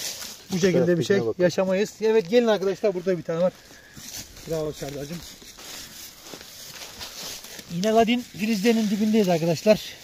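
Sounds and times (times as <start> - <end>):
branches brushing: 0.0 - 10.0
footsteps in dry leaves: 0.0 - 10.0.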